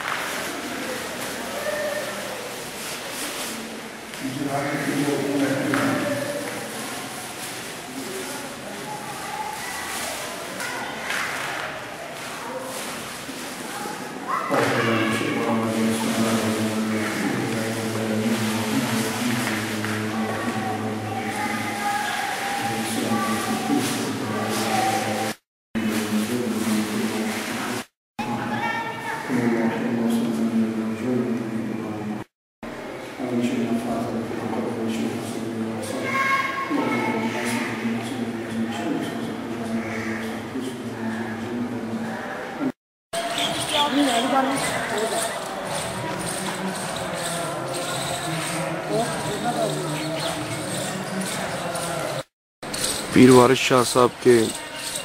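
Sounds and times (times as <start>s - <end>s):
people's voices: 0.0s - 55.0s.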